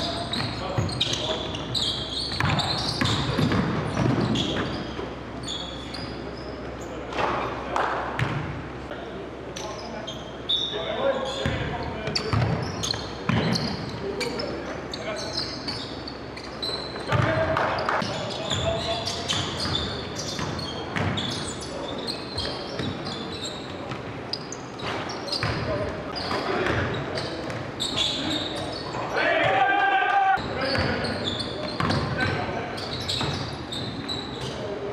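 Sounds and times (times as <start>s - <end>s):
players' voices: 0.0s - 34.9s.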